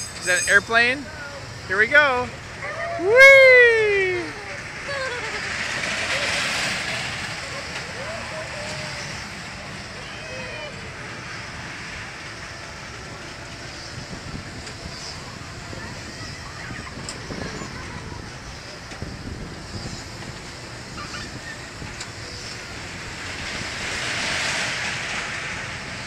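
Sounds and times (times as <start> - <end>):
faint voices: 0.0 - 24.0
steady rushing noise: 0.0 - 26.0.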